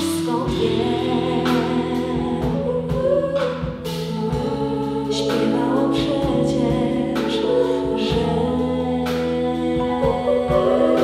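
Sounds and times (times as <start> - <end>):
backing singers in harmony: 0.0 - 11.0
bass guitar: 0.0 - 11.0
drums and cymbals: 0.0 - 11.0
female lead vocal: 0.0 - 11.0
keyboard: 0.0 - 11.0.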